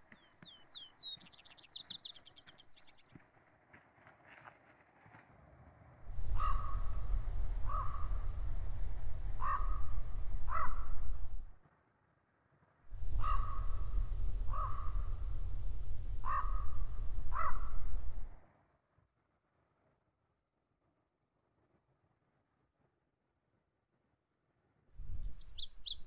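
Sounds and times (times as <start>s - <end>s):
bird crow-like calls: 6.0s - 11.5s, 12.9s - 18.4s, 25.0s - 26.0s
steady low rumble: 6.0s - 11.5s, 12.9s - 18.4s, 25.0s - 26.0s.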